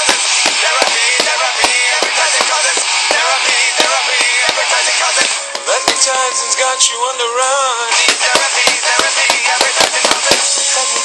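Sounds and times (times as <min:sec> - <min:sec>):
song playing: 0:00.0 - 0:11.0.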